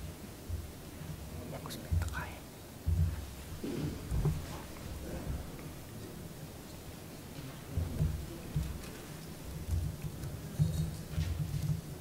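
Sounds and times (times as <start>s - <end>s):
person whispering into microphone: 1.4s - 2.5s
low bumps on microphone: 2.9s - 5.6s.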